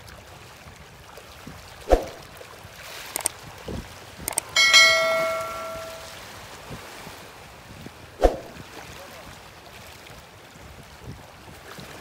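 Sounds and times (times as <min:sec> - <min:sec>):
bell chime: 0:04.5 - 0:06.2.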